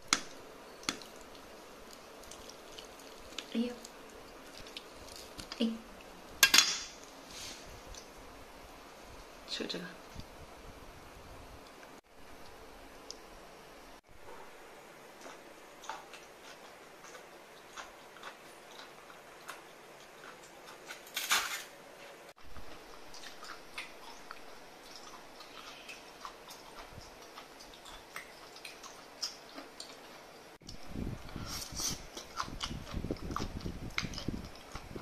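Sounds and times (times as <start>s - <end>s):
chewing and biting: 0.8s - 5.5s, 15.2s - 21.7s, 22.5s - 35.0s.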